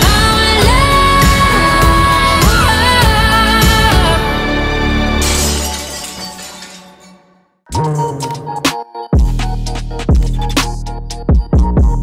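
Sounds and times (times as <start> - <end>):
glass shattering sound effect: 5.2 - 8.0.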